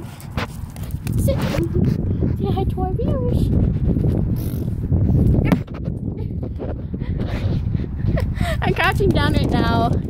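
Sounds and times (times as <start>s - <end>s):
wind and handling rumble: 0.0s - 10.0s.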